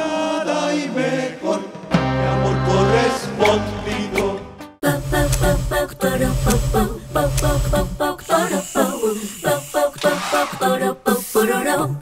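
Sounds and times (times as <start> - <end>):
jingle with voices singing: 0.0 - 7.3, 8.0 - 12.0.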